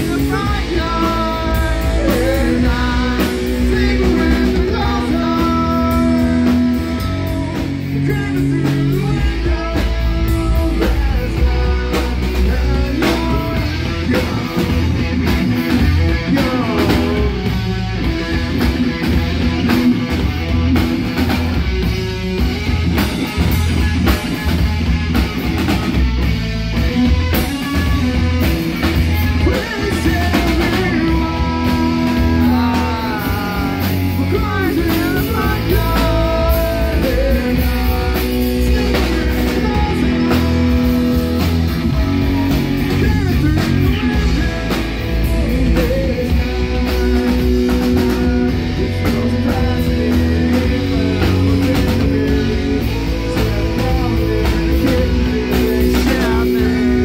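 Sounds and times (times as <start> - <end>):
rock band playing: 0.0 - 57.0.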